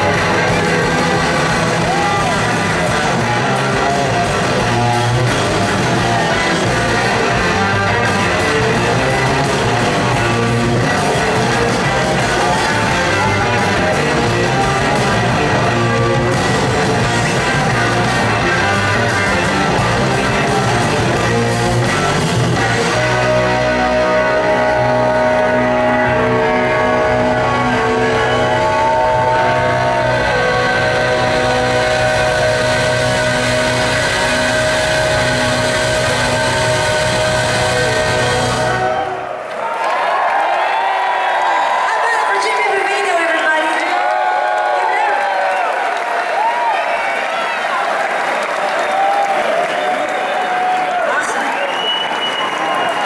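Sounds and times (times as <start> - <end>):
people shouting: 0.0 - 5.3, 27.7 - 42.6
audience clapping: 0.0 - 22.8, 27.4 - 37.7, 38.8 - 53.0
slide guitar glides: 0.0 - 39.1
electric guitars ringing: 0.0 - 39.4
drum and cymbal roll: 30.5 - 39.0.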